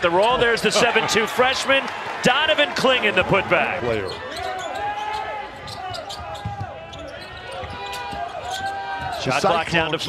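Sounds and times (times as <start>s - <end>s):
crowd noise: 0.0s - 10.0s
sneakers squeaking: 3.2s - 9.4s.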